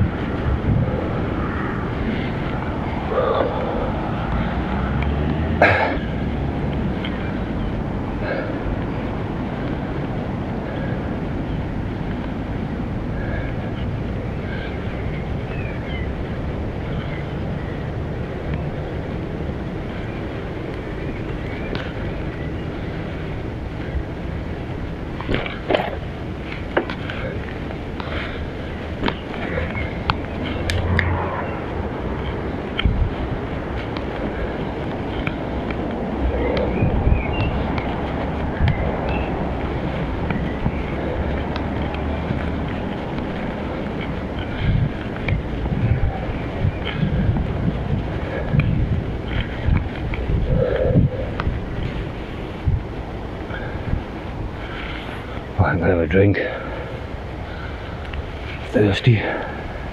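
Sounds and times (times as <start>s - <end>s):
bicycle tyre rumble: 0.0s - 59.9s
wind rush: 0.0s - 59.9s
bike knocks and rattles: 25.1s - 31.0s.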